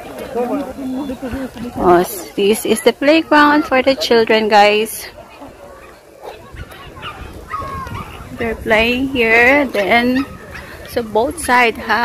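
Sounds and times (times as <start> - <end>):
faint children's voices: 0.0 - 12.0.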